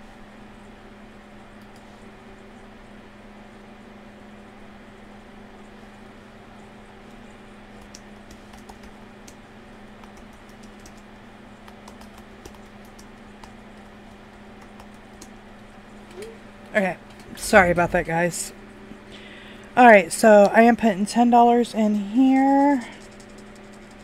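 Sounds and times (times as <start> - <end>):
steady low hum: 0.0 - 24.0
keyboard keystroke clicks: 10.0 - 11.0, 11.6 - 13.9.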